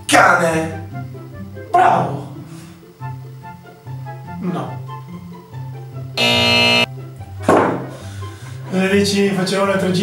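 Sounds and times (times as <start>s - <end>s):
quiet background music: 0.0s - 6.2s, 6.9s - 10.0s
game show buzzer: 6.2s - 6.9s.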